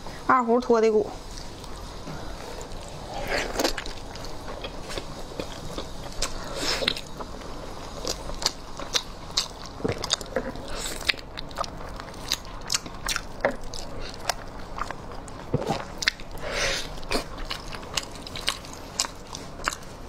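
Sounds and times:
wet biting and chewing: 0:01.4 - 0:20.0.

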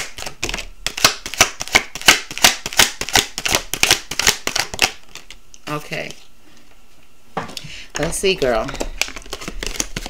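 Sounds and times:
cards being shuffled: 0:00.0 - 0:05.4, 0:08.0 - 0:10.0.

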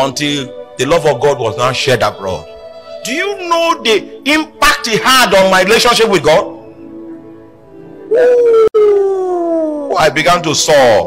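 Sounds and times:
person crying out: 0:08.1 - 0:10.0.

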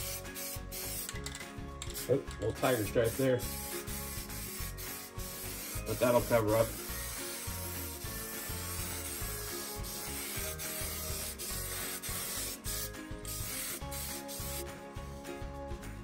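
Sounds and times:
aerosol spray can hissing: 0:00.0 - 0:01.2, 0:01.8 - 0:15.2.

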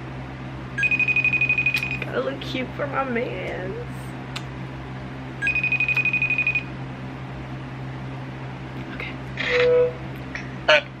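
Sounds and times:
low steady hum: 0:00.0 - 0:11.0
phone ringing tone: 0:00.8 - 0:01.8, 0:05.4 - 0:06.7.

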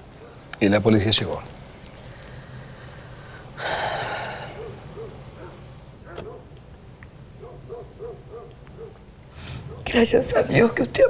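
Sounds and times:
owl hooting: 0:00.0 - 0:06.6
loud breath out: 0:02.4 - 0:04.7, 0:09.3 - 0:09.7.

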